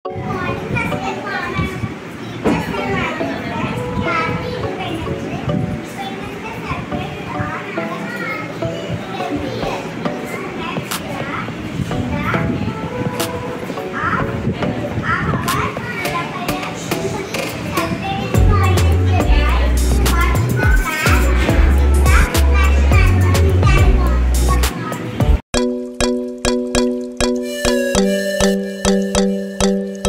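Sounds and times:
young children chattering: 0:00.1 - 0:25.3
girl speaking: 0:00.2 - 0:12.9, 0:13.9 - 0:25.2.

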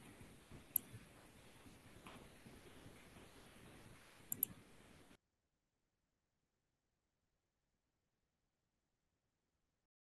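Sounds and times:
faint room noise: 0:00.0 - 0:05.2
sharp clicks: 0:04.3 - 0:04.6.

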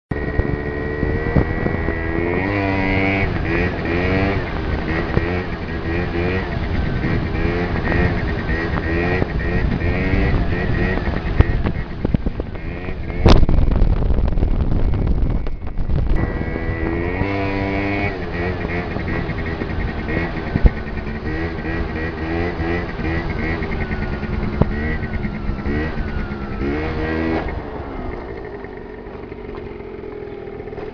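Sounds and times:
wind noise on microphone: 0:00.1 - 0:29.9
scooter engine revving: 0:00.1 - 0:30.9.

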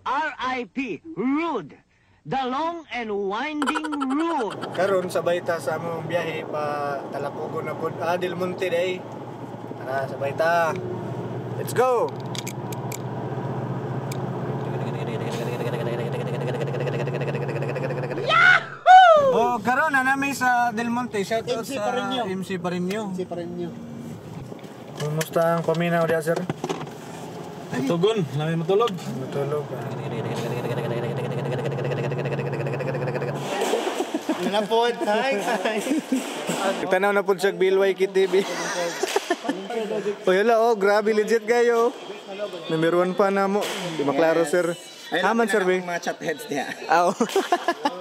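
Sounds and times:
car engine drone and road noise: 0:04.3 - 0:18.2, 0:19.4 - 0:34.6.

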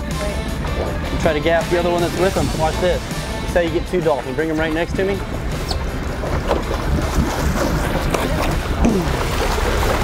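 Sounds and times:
boat engine rumbling: 0:00.0 - 0:10.0
water around the hull: 0:00.0 - 0:10.0
wind: 0:00.0 - 0:10.0.

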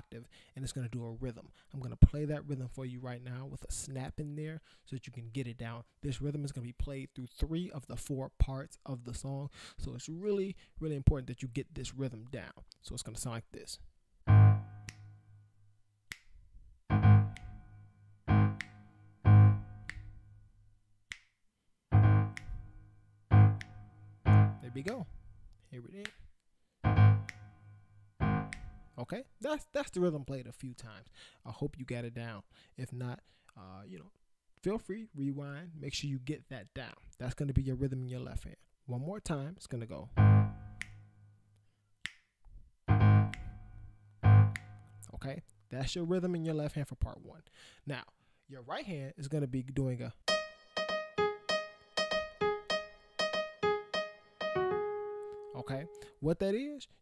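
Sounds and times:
low piano octave ringing: 0:14.3 - 0:15.2, 0:16.9 - 0:19.9, 0:21.9 - 0:24.9, 0:26.8 - 0:28.9, 0:40.2 - 0:40.8, 0:42.9 - 0:45.0, 0:50.3 - 0:56.1
low keyboard chords: 0:14.3 - 0:15.3, 0:16.9 - 0:20.4, 0:21.9 - 0:25.1, 0:26.8 - 0:29.0, 0:40.2 - 0:41.0, 0:42.9 - 0:45.1, 0:50.3 - 0:56.1
finger snaps: 0:14.8 - 0:15.1, 0:16.1 - 0:16.4, 0:17.2 - 0:17.6, 0:18.5 - 0:18.9, 0:19.8 - 0:20.2, 0:21.1 - 0:21.4, 0:22.2 - 0:22.7, 0:23.5 - 0:25.1, 0:27.0 - 0:27.6, 0:28.4 - 0:28.8, 0:40.8 - 0:41.0, 0:42.0 - 0:42.3, 0:43.2 - 0:43.6, 0:44.5 - 0:44.9.

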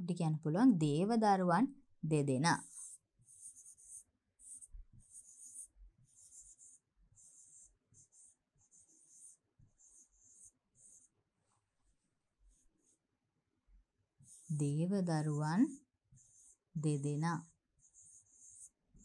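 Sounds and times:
stylus scratching on screen: 0:02.5 - 0:13.1, 0:14.2 - 0:19.0.

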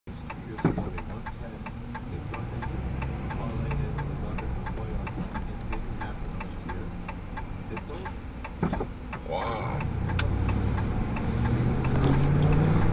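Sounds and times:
low engine hum: 0:00.1 - 0:12.9
turn signal clicking: 0:00.1 - 0:12.9.

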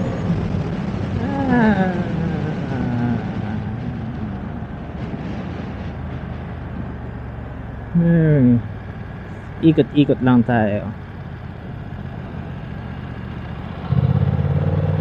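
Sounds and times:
wind noise: 0:00.0 - 0:07.6
motorcycle engine running: 0:00.0 - 0:15.0.

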